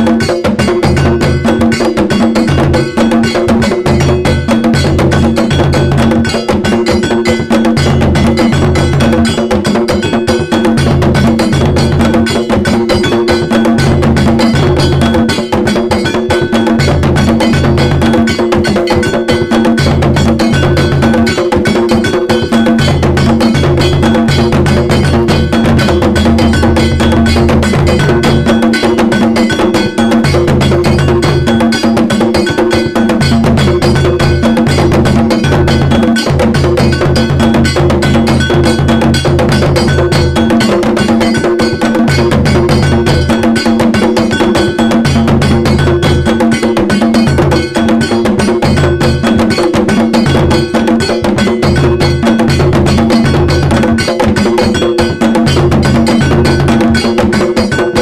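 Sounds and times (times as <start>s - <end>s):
metallic bell struck: 0.0s - 58.0s
percussion: 0.0s - 58.0s.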